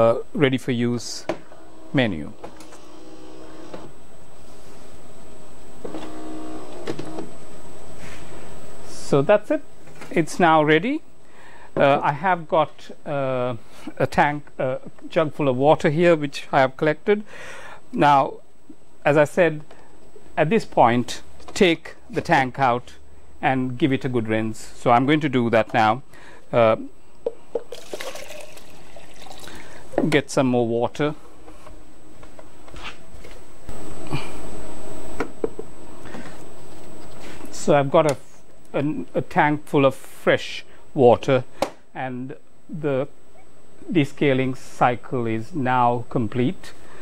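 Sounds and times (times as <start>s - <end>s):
steady machine hum: 0.0s - 47.0s
coffee machine motor whirring: 1.4s - 3.9s
water pouring into jug: 27.7s - 29.9s.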